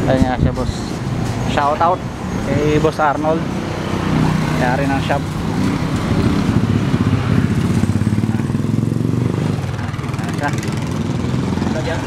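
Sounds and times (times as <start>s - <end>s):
small motorcycle engine running: 3.0s - 12.0s.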